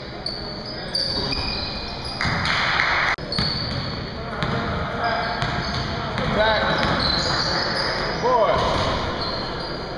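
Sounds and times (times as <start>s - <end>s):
sneaker squeaks: 0.0s - 9.9s.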